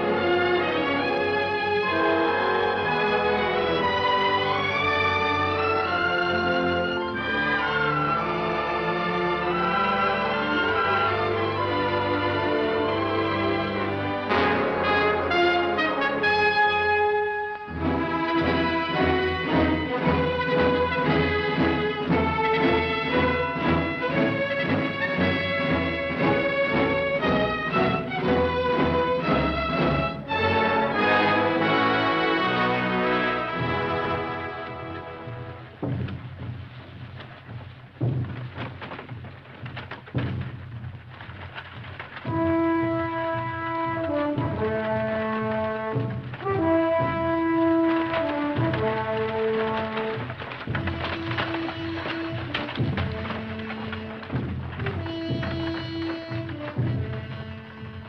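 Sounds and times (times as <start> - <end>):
orchestral music with brass: 0.0 - 58.0
sustained brass chords: 14.2 - 19.4
low rumbling drums: 32.8 - 58.0.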